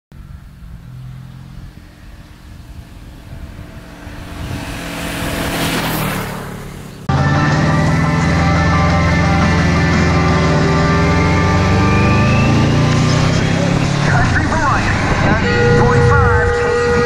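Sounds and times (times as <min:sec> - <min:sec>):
motorcycle passing at speed: 0:00.2 - 0:17.0
music: 0:07.1 - 0:15.4.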